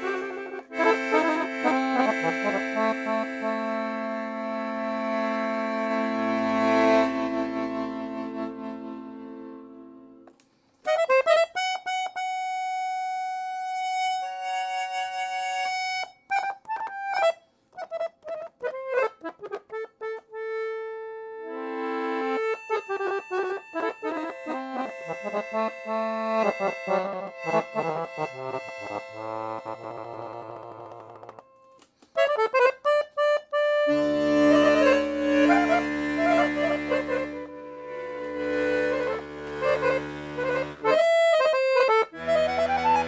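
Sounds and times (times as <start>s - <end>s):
accordion notes: 0.0s - 43.0s.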